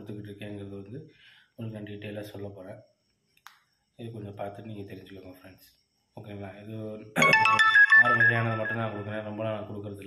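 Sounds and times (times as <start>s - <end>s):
short electronic ringtone tune: 7.2s - 9.3s.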